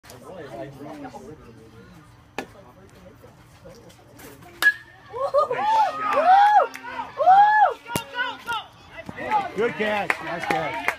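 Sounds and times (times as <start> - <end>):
bat striking baseball ping: 4.6 - 5.0
spectators yelling: 5.1 - 10.9.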